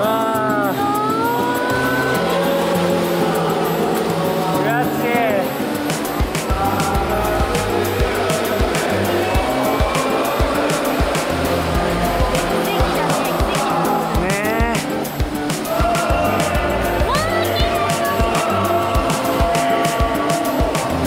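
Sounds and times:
voices singing in a cave: 0.0s - 21.0s.

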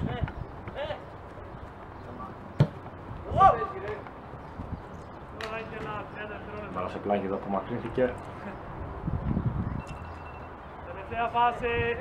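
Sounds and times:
football kicked thud: 2.6s - 2.8s
players shouting: 3.2s - 4.1s.

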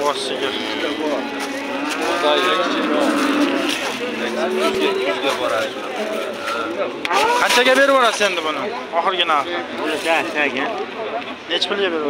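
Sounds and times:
cow mooing: 0.0s - 5.8s
crowd hubbub: 0.0s - 12.0s.

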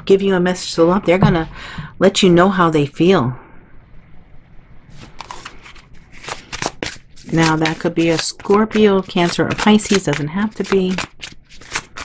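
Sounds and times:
cards being shuffled: 5.0s - 12.0s.

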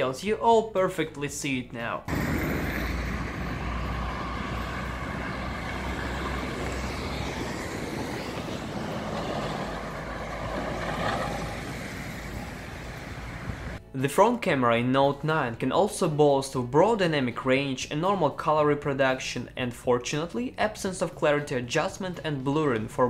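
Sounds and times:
cars passing: 2.1s - 13.8s.

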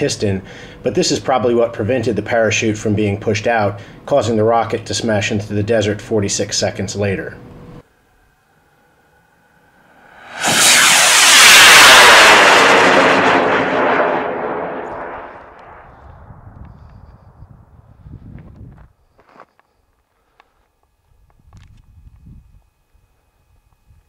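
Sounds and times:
rocket motor rushing hiss: 9.9s - 15.8s.

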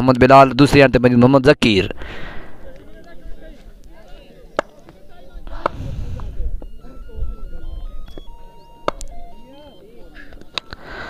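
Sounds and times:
faint background voices: 2.4s - 11.0s.

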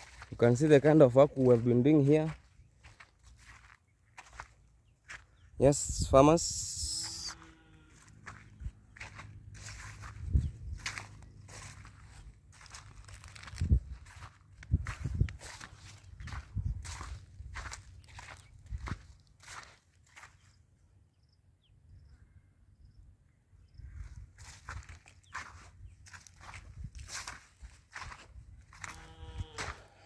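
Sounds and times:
footsteps on soil: 0.0s - 20.6s, 23.9s - 30.0s.

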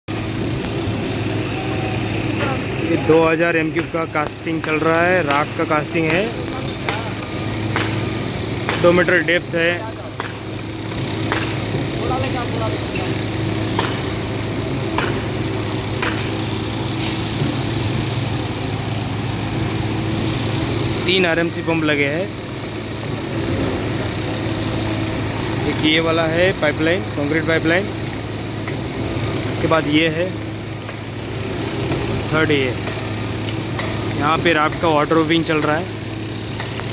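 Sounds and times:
construction machinery engines droning: 0.1s - 36.9s
construction site noise: 0.1s - 36.9s
diesel concrete pump running: 0.1s - 36.9s.

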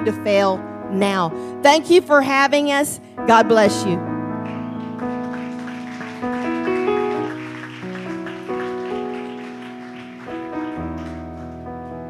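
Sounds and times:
piano chords ringing out: 0.0s - 12.0s.

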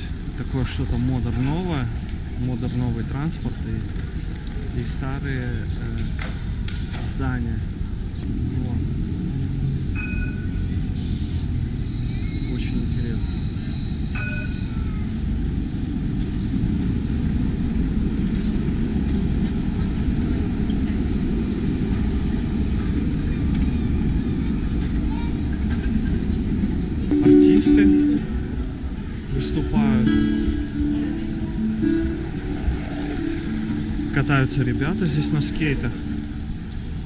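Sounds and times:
tram rumbling past: 0.0s - 37.0s
short high tones: 27.1s - 36.7s
acoustic guitar playing: 27.1s - 37.0s.

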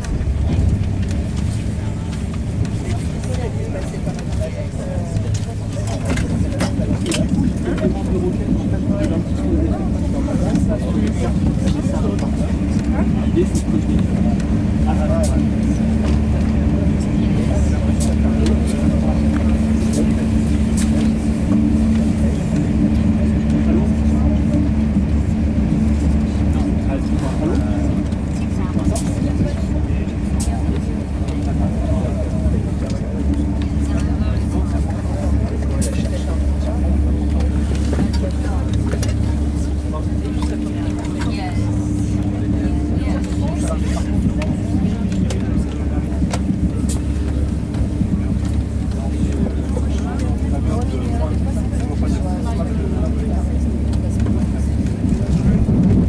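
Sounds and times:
constant hum: 0.0s - 56.0s
train running low rumble: 0.0s - 56.0s.

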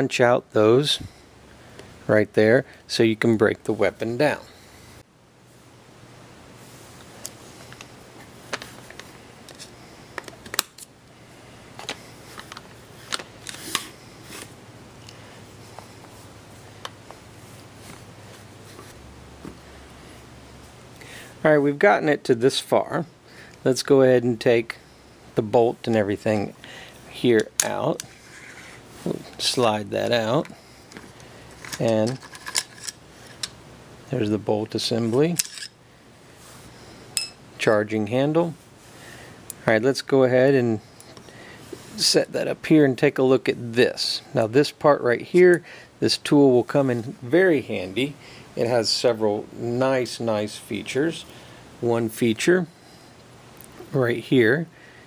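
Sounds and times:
metal clicks and scrapes: 30.9s - 33.6s.

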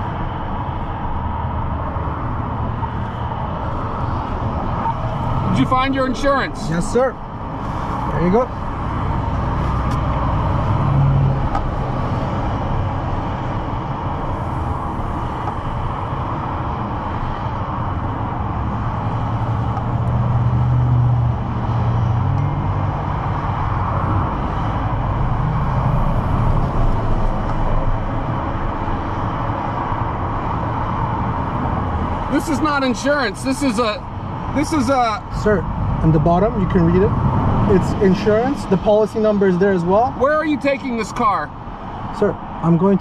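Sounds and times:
road traffic rumble: 0.0s - 43.0s
vehicles passing: 0.0s - 43.0s.

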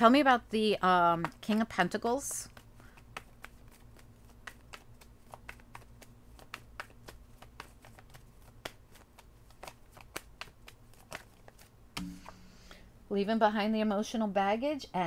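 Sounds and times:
cards being shuffled: 0.8s - 11.8s.

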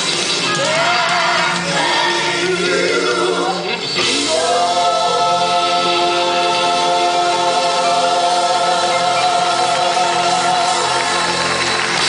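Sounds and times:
keyboard accompaniment: 0.0s - 12.0s
vocal group singing in harmony: 0.5s - 12.0s.

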